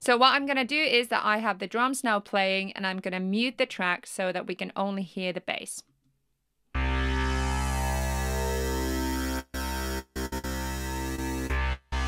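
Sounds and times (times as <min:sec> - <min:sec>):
gated low bass note: 0:06.8 - 0:12.0.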